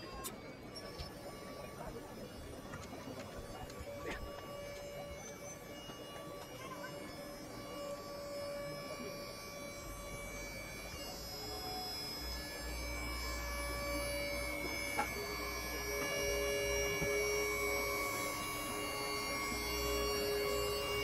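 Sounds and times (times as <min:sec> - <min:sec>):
lift power unit humming: 0:00.0 - 0:21.0.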